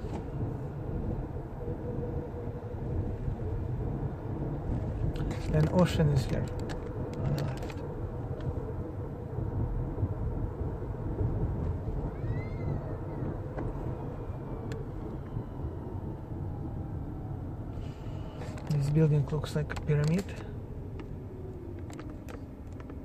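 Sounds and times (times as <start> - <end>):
road and engine rumble in car: 0.0 - 23.0.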